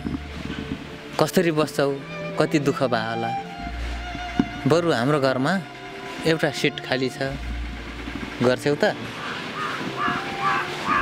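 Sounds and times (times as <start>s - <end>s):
bird calling: 9.0s - 11.0s.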